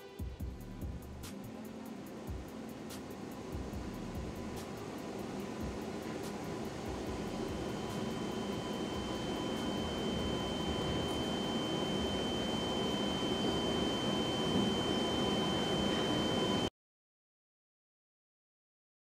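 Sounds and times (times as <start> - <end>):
steady rushing noise: 1.0 - 16.6
thin high tone: 4.7 - 16.7.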